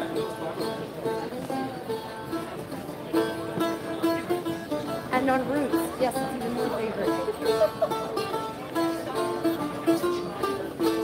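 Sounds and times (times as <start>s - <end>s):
plucked lute-like instrument: 0.0s - 11.0s.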